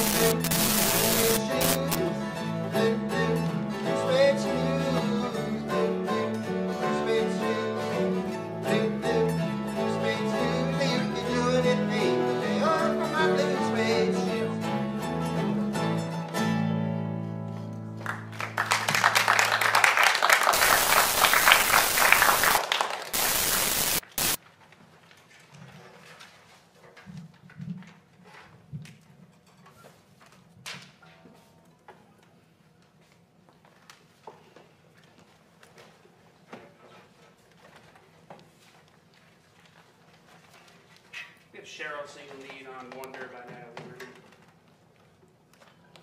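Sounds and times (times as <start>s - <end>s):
person speaking: 0.0s - 2.0s
audience applauding: 18.0s - 24.4s.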